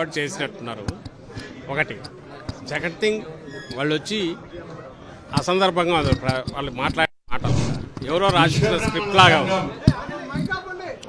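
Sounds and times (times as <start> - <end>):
voice fragments in a crowd: 0.0 - 11.0.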